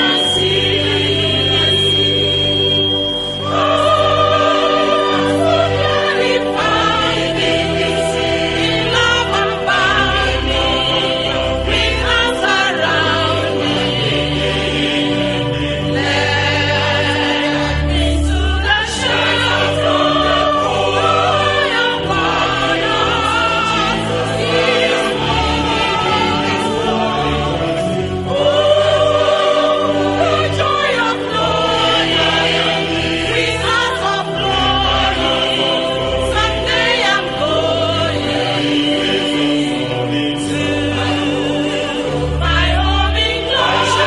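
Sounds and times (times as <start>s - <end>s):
choir singing held chords: 0.0s - 44.0s.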